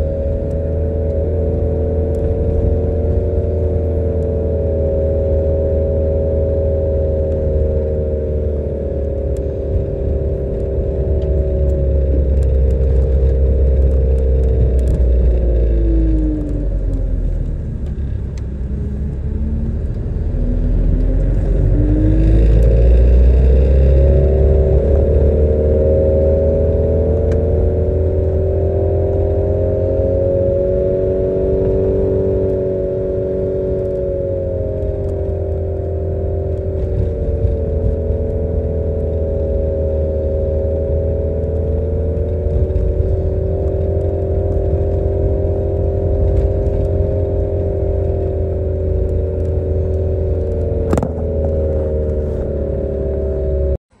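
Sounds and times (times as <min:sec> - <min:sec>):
car engine drone: 0:00.0 - 0:54.0
road noise rumble: 0:00.0 - 0:54.0.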